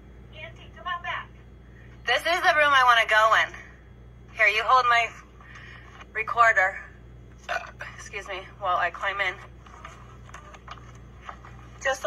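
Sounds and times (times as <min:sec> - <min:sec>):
steady low hum: 0:00.0 - 0:12.0
woman's voice: 0:00.3 - 0:01.4, 0:02.0 - 0:05.2, 0:06.1 - 0:09.5, 0:11.7 - 0:12.0.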